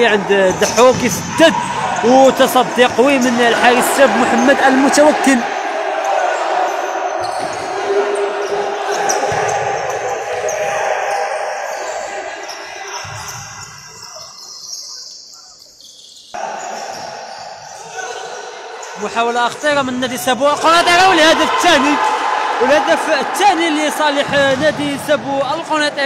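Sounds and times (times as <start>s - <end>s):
players' voices: 0.0s - 26.0s.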